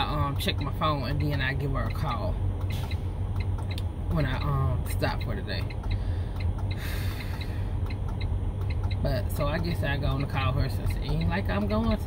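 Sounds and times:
low hum in truck cab: 0.0 - 12.0.

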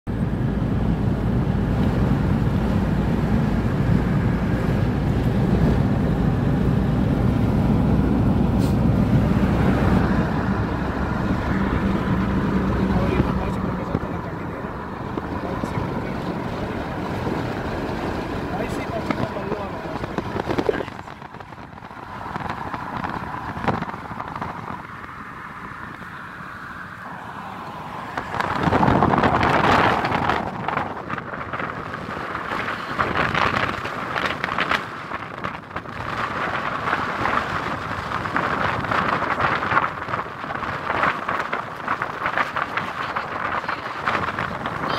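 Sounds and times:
car engine and tyre rumble: 0.0 - 44.9.

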